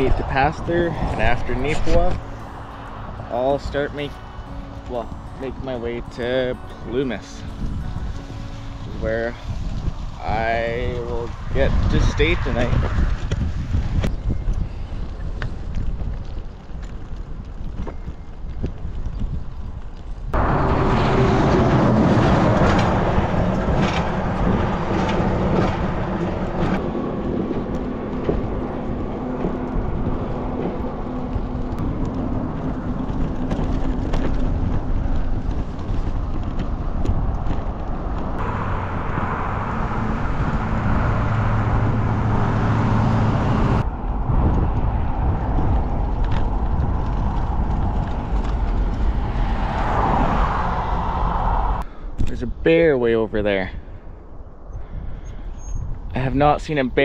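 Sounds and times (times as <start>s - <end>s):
cars and trucks passing: 0.0s - 52.2s
engine hum: 0.0s - 52.3s
bicycle road noise: 0.0s - 57.0s
wind rushing over microphone: 0.0s - 57.0s.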